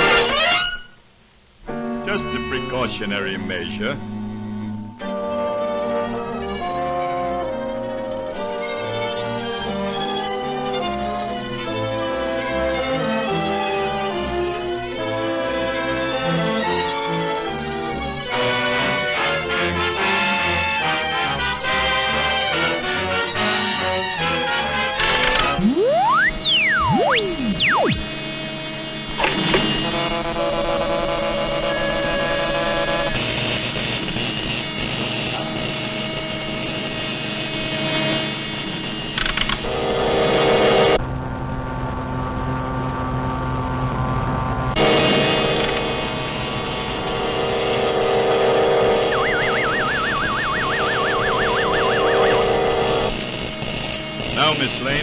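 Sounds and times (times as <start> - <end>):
orchestral cartoon music: 1.7 - 4.0, 49.0 - 53.1
rising and falling pitch glides: 25.3 - 28.2, 48.5 - 53.1
high warbling tone: 25.4 - 28.2, 48.8 - 53.1.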